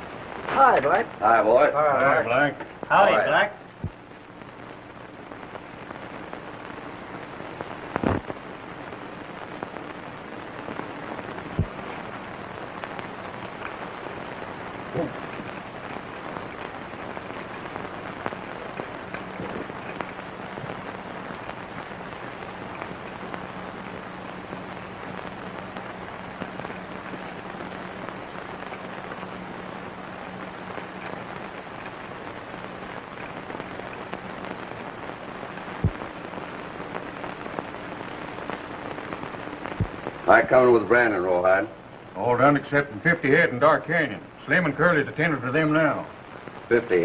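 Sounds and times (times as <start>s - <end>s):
faint steady hum: 0.0s - 47.0s
film soundtrack hiss and crackle: 0.0s - 47.0s
sharp pops: 3.7s - 40.4s.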